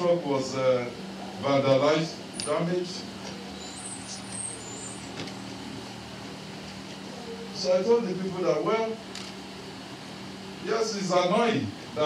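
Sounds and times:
room hum: 0.0s - 12.0s
faint high whistle: 3.5s - 5.1s.

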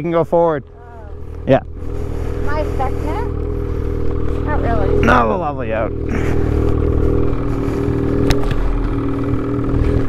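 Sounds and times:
snowmobile engine idling: 0.0s - 10.0s.

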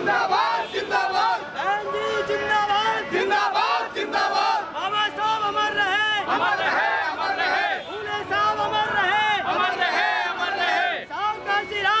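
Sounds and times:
men chanting slogans: 0.0s - 5.6s, 6.2s - 7.9s, 8.6s - 11.1s.

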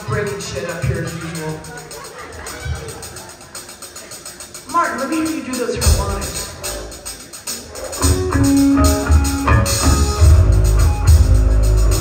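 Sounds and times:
live rock band: 0.0s - 12.0s
electric guitar notes: 7.9s - 12.0s.

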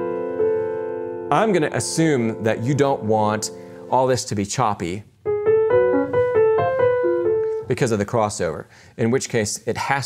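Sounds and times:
grand piano legato phrase: 0.0s - 4.4s, 5.2s - 7.8s.

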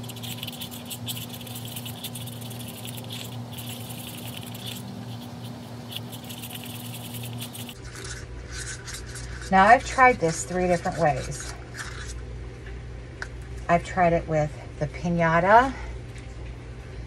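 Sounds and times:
stick scraping inside a cup: 0.0s - 12.2s.

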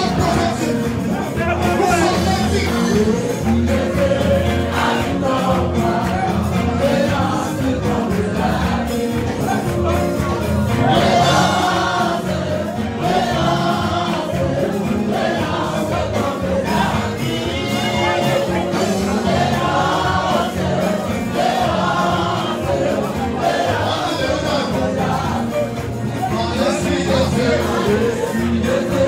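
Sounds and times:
choir singing gospel song: 0.0s - 29.0s
musical accompaniment: 0.0s - 29.0s.

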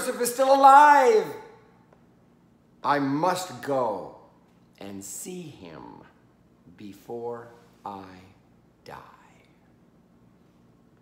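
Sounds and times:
man speaking: 0.0s - 1.6s, 2.8s - 9.6s.

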